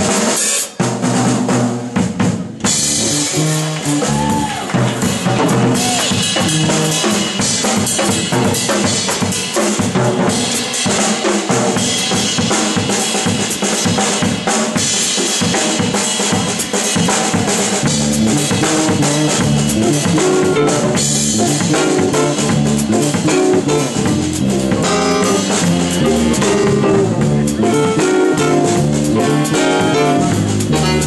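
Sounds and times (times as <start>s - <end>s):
bass and band playing: 0.0s - 31.0s
drum kit played hard: 0.0s - 31.0s.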